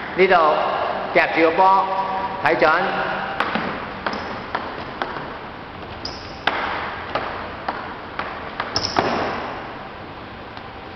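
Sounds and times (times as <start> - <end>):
table tennis ball bouncing: 3.4 - 9.6.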